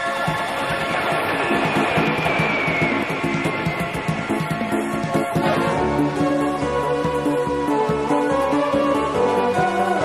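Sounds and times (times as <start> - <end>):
instrumental theme music: 0.0 - 10.0.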